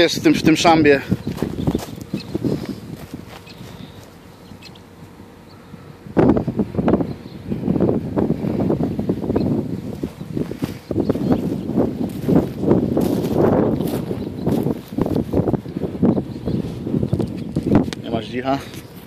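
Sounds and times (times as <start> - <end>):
footsteps through reeds and grass: 0.9 - 4.4, 9.6 - 15.9.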